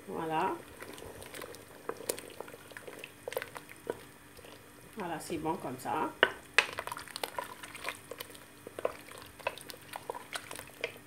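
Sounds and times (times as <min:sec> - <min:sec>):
stew bubbling in a pot: 0:00.0 - 0:11.0.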